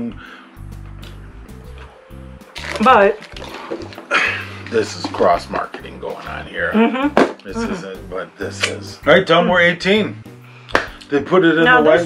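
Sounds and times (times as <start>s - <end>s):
music with low bass notes: 0.0s - 12.0s.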